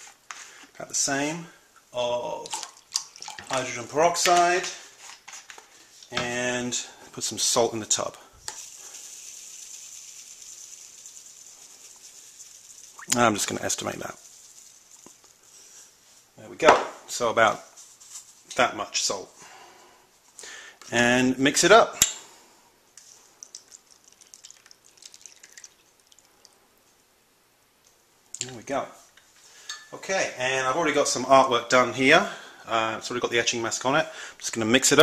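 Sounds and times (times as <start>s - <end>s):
salt trickling into plastic tub: 2.3s - 3.8s, 7.9s - 15.9s, 23.0s - 26.6s.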